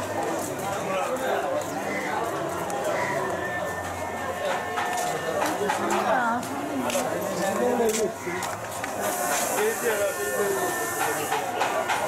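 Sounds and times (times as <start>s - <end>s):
people's voices: 0.0s - 12.0s
street noise hiss: 0.0s - 12.0s.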